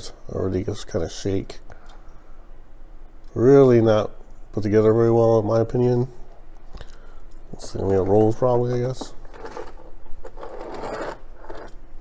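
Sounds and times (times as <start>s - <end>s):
toy car wheels rattling on cardboard: 9.3s - 11.8s.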